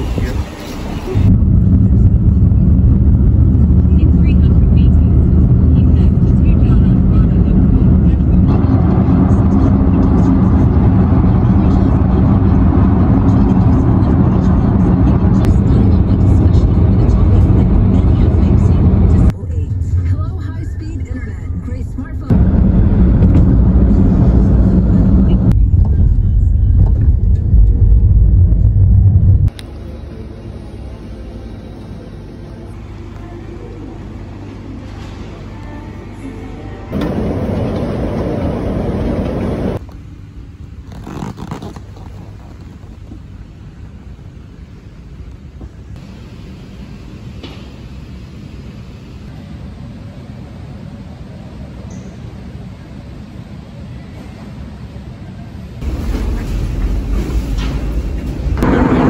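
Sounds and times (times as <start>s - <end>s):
car road and engine rumble: 0.0s - 53.4s, 55.0s - 59.0s.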